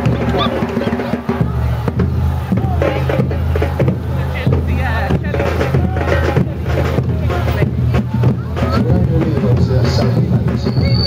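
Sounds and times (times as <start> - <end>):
music: 0.0 - 11.0
voices: 0.0 - 11.0.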